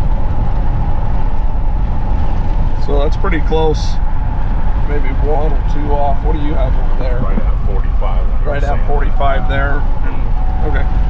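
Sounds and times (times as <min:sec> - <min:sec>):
road and engine rumble in car cabin: 0:00.0 - 0:11.0.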